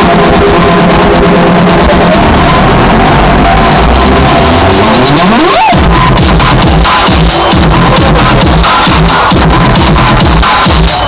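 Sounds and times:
rising synth sweep: 0.0s - 8.6s
electronic dance music: 0.0s - 11.0s.

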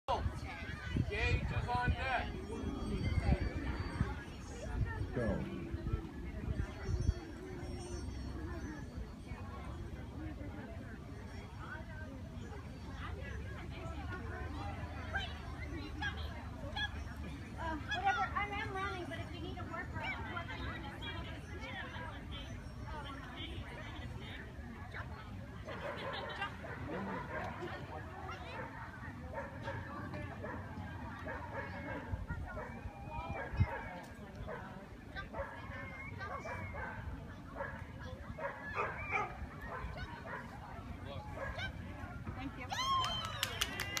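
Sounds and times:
background chatter: 0.1s - 44.0s
murmur of people talking: 0.1s - 44.0s.

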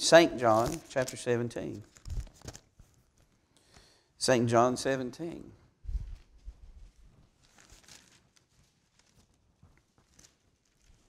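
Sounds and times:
book pages rustling: 0.4s - 3.4s, 6.1s - 11.0s.

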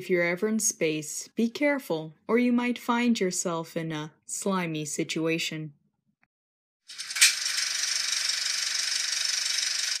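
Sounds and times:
film projector clattering: 6.9s - 10.0s
film projector click: 6.9s - 10.0s.

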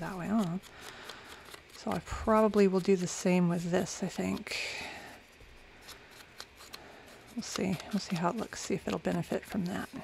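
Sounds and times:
paper rustling: 5.9s - 10.0s.

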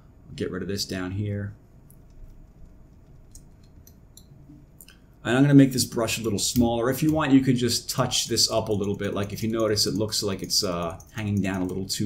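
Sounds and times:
computer mouse clicks: 1.9s - 5.0s.

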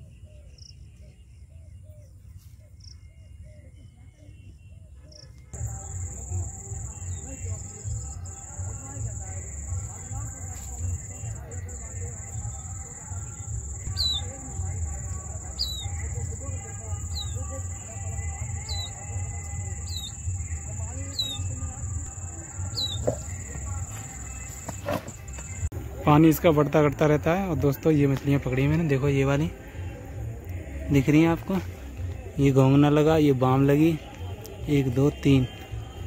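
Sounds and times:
faint chirps: 0.0s - 25.7s
high-pitched insect trill: 5.6s - 25.6s.

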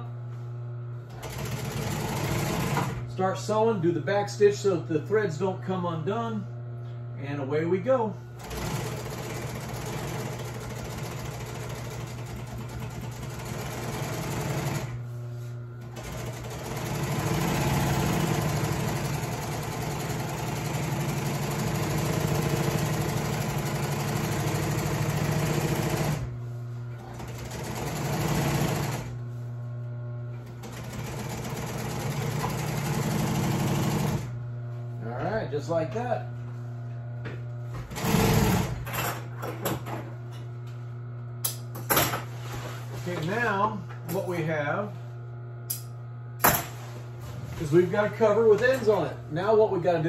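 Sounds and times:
steady machine hum: 0.0s - 50.0s
sewing machine stitching: 1.1s - 3.0s, 8.4s - 15.0s, 15.8s - 26.3s, 27.0s - 29.2s, 30.5s - 34.3s, 37.9s - 38.9s.

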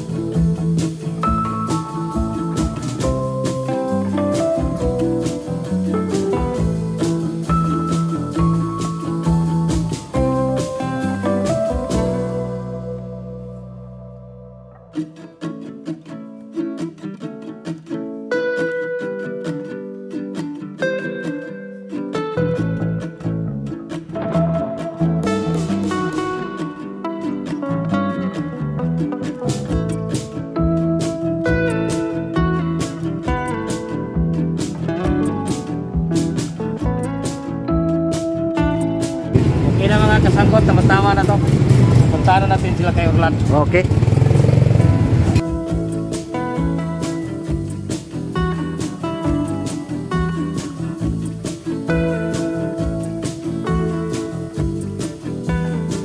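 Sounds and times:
street noise: 0.0s - 15.2s, 22.5s - 56.0s
plucked string instrument melody: 0.0s - 56.0s
vehicle engine rumble: 39.3s - 45.4s.

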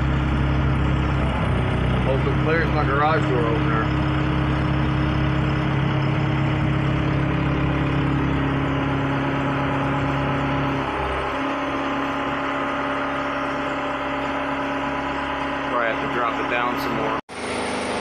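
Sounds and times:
engine humming: 0.0s - 18.0s.

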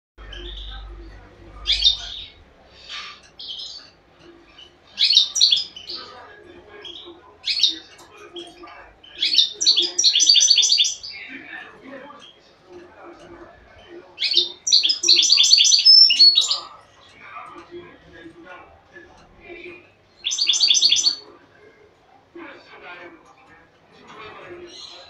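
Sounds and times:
finch twittering chirps: 0.2s - 6.1s, 6.8s - 11.3s, 14.2s - 16.7s, 20.2s - 21.2s.

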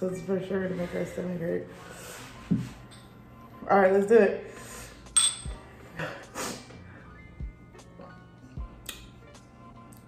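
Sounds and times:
shot glasses clinking: 5.2s - 5.6s.

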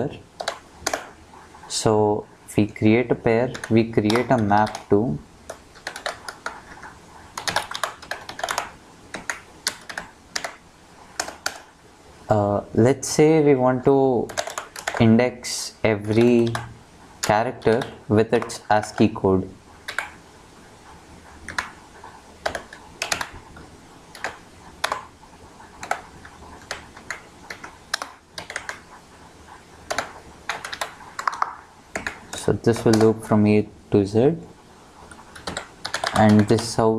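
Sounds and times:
computer keyboard typing: 0.4s - 1.2s, 3.4s - 11.7s, 14.2s - 15.2s, 16.0s - 19.2s, 19.8s - 20.2s, 21.4s - 29.0s, 29.8s - 33.2s, 35.1s - 36.8s.

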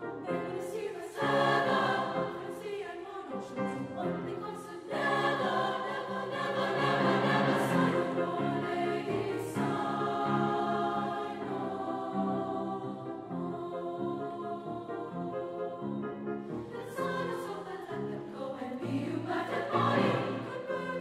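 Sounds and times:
treble choir singing: 0.0s - 21.0s.

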